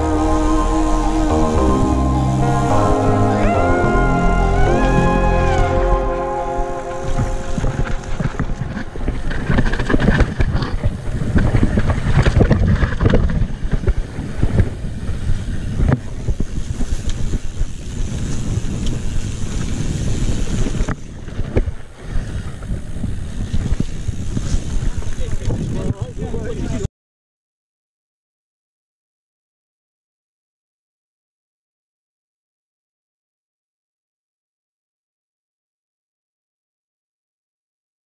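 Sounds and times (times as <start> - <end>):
bike tyres on dirt: 0.0 - 26.8
wind buffeting microphone: 6.0 - 26.9
bike chain and frame rattling: 8.0 - 26.8.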